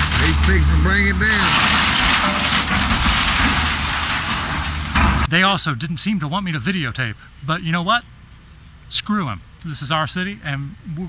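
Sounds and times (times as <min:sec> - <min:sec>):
falling debris: 0:00.0 - 0:05.3
splintering timber crackling: 0:00.0 - 0:05.3.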